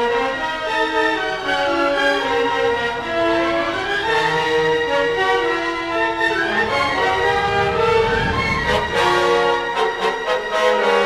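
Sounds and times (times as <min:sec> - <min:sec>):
orchestra playing sustained chords: 0:00.0 - 0:11.0
low rumble: 0:06.2 - 0:09.7.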